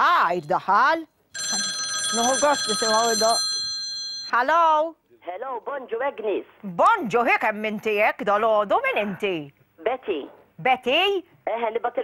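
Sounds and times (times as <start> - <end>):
telephone ringing: 1.4 - 4.4
woman's voice: 6.2 - 12.0.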